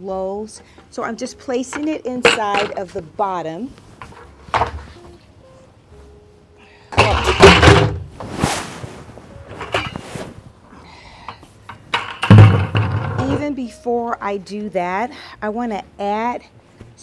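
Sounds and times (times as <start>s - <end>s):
plastic buckets scraping and knocking: 4.0s - 5.2s, 7.0s - 10.4s, 11.7s - 13.5s.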